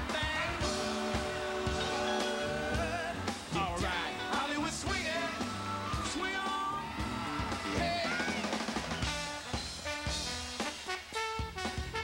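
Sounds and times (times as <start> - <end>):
drum kit steady beat: 0.0 - 12.0
trombone and saxophone horn lines: 0.0 - 12.0.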